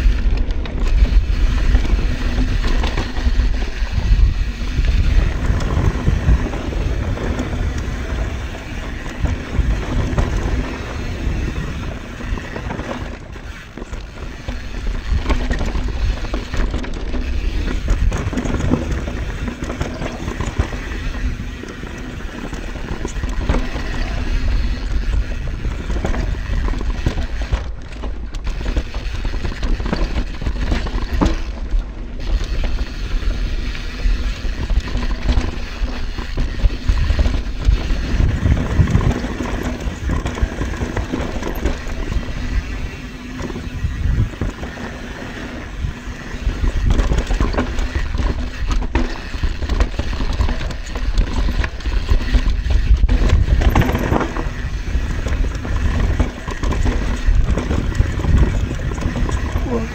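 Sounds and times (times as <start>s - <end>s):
bike rattling and knocking: 0.0s - 59.9s.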